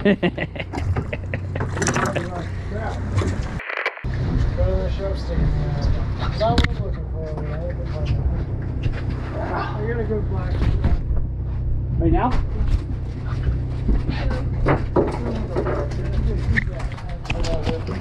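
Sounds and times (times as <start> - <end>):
boat engine humming: 0.0 - 6.2, 6.9 - 18.0.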